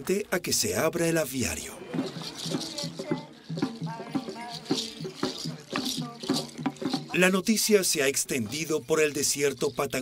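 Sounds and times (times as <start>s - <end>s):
hand rattles shaken: 1.9s - 7.7s, 8.4s - 10.0s.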